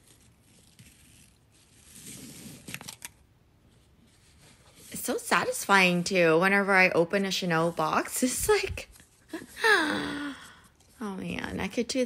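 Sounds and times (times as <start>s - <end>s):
ribbon rustling against cardboard box: 0.0s - 3.1s.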